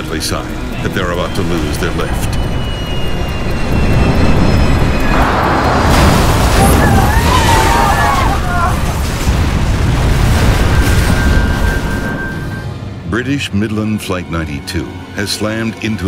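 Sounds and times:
heavy low rumble with rushing: 0.0s - 14.0s
passengers screaming: 1.9s - 9.0s.

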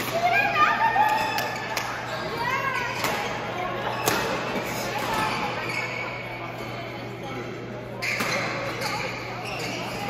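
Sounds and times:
voices of players: 0.0s - 10.0s.

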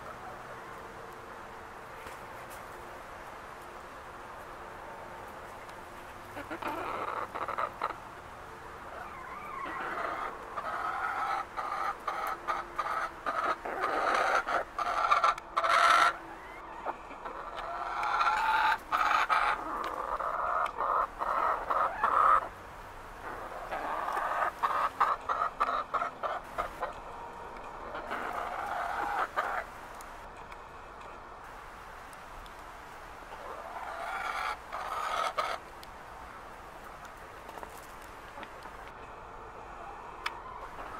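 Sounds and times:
chickens clucking: 5.2s - 22.6s, 23.2s - 31.2s, 33.2s - 40.9s.

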